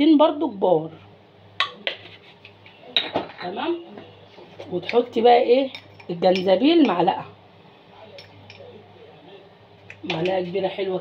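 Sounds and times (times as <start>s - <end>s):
metal spoon clinking on steel tray: 4.9s - 7.0s.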